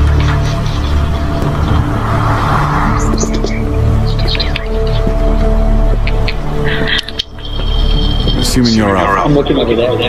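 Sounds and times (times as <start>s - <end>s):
sustained film music: 0.0s - 10.0s
rushing swell of noise: 0.9s - 5.8s.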